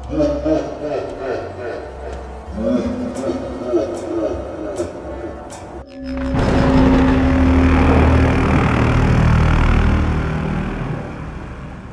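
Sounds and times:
low hum: 2.0 - 11.9
deep rumbling whoosh: 6.4 - 11.9.

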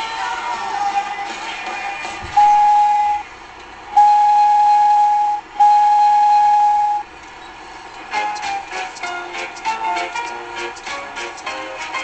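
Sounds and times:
background music: 0.0 - 3.3, 8.0 - 12.0
steam train whistle: 4.0 - 7.1.

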